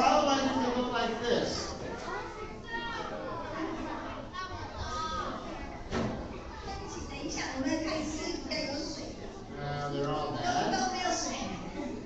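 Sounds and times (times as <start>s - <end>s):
murmur of chatter: 0.0s - 12.0s
children calling out: 2.0s - 5.7s.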